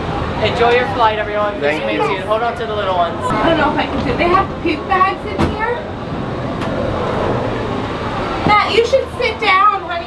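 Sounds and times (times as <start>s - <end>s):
gondola mechanical rumble: 2.6s - 10.0s.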